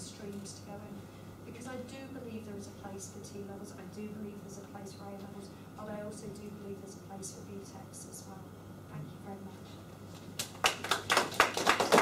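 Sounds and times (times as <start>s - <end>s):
audience applauding: 10.4s - 12.0s.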